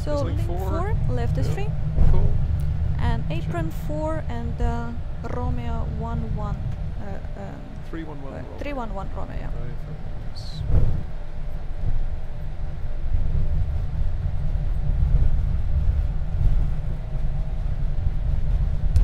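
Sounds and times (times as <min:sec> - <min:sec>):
aircraft engines idling: 0:00.0 - 0:13.1
faint steady hum: 0:00.0 - 0:19.0.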